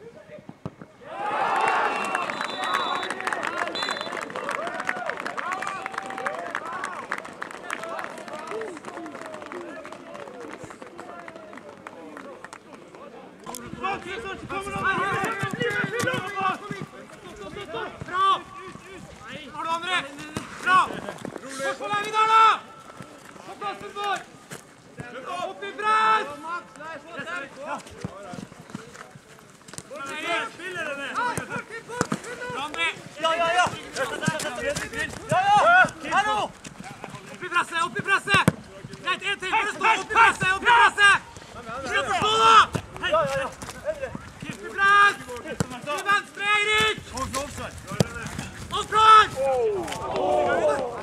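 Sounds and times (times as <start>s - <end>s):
players shouting: 1.0s - 7.1s, 37.3s - 47.1s, 48.7s - 51.0s
footballers shouting: 1.0s - 8.8s, 13.7s - 21.0s, 21.7s - 22.9s, 29.9s - 47.2s, 48.0s - 51.0s
ball being kicked: 38.3s - 39.1s, 46.8s - 48.8s.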